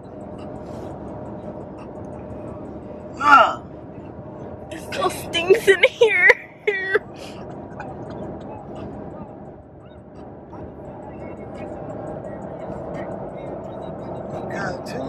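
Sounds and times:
faint music: 0.0 - 15.0
faint voices: 0.0 - 15.0
road and wind noise in car: 0.0 - 15.0.

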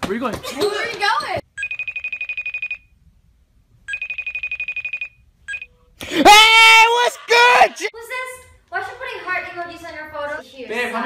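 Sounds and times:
video call ringing tone: 1.5 - 2.9, 3.9 - 5.8.

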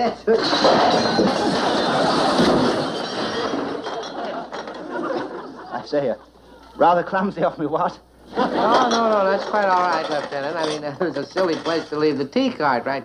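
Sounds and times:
crockery crashing: 0.0 - 5.8, 8.4 - 12.2
audience laughter: 1.0 - 5.9, 8.2 - 9.6.

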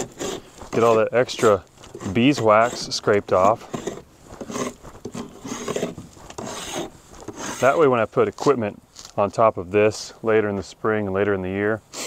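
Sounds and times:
hive tool scraping wood: 0.0 - 9.2.

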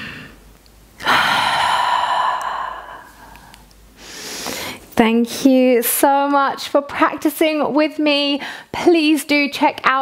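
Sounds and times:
woman inhaling: 1.0 - 4.9.

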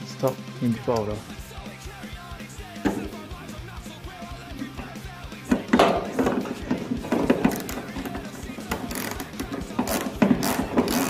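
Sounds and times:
rock music: 0.0 - 11.0
socket ratchet clicking: 7.3 - 11.0.

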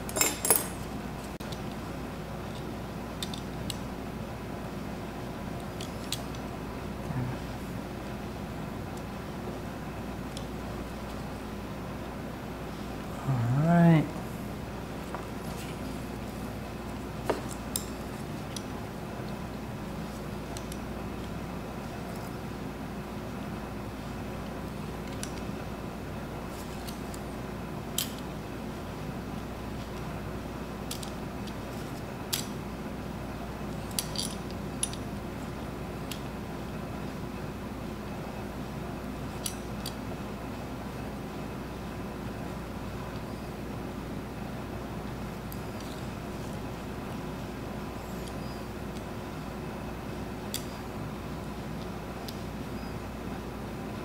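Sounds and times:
steady background hum: 0.0 - 54.0.

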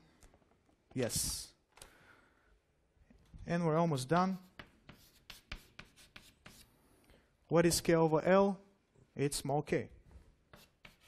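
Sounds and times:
writing scratches on board: 4.3 - 6.7, 10.5 - 11.0.

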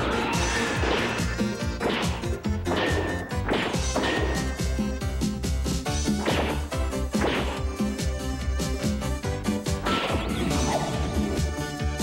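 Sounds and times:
driving cartoon music: 0.0 - 12.0.

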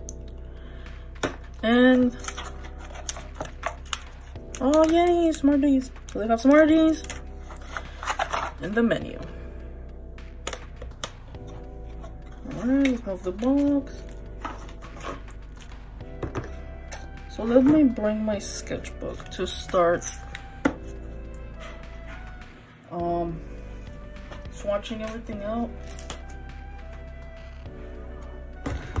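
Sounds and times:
items handled on cutting mat: 7.0 - 8.6.

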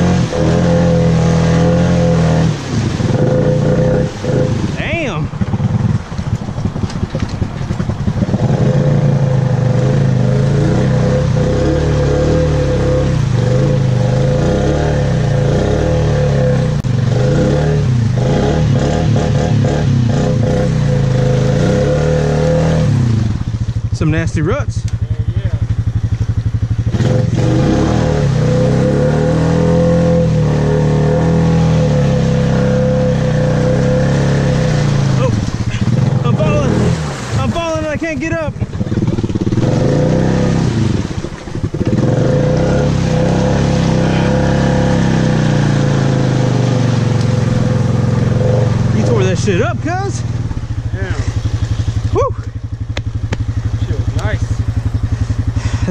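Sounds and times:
atv engine revving: 0.0 - 55.9
mud and water splashing: 0.0 - 55.9.

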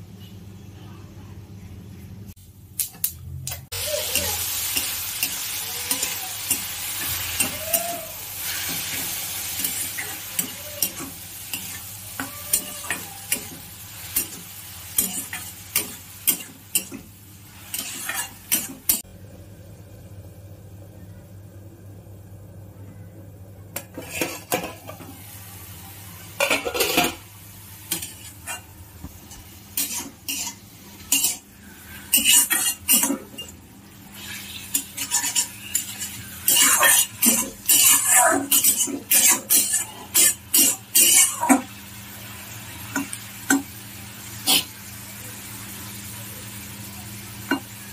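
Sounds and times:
oil sizzling: 2.7 - 20.8, 23.8 - 47.9
metal spatula scraping pan: 17.6 - 19.0, 23.8 - 25.1, 26.4 - 27.2, 29.3 - 41.4.

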